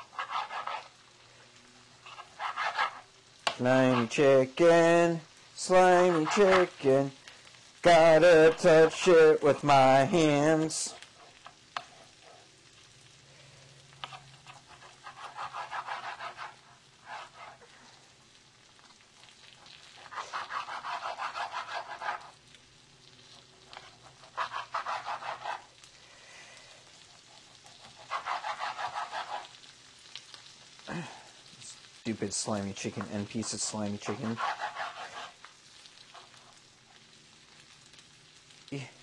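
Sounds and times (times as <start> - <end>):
knife sawing through raw meat: 0.0 - 0.9, 2.0 - 3.0, 5.8 - 6.7, 14.0 - 17.7, 19.9 - 22.4, 23.8 - 25.7, 27.2 - 29.6, 33.5 - 35.4.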